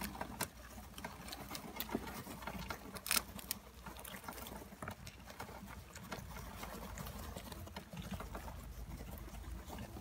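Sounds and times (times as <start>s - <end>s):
hamsters crunching crackers: 0.0s - 10.0s.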